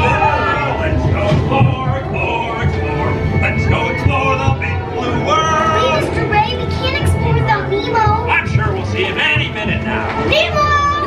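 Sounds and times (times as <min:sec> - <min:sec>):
music: 0:00.0 - 0:11.0
children's voices: 0:05.0 - 0:09.4, 0:10.2 - 0:11.0.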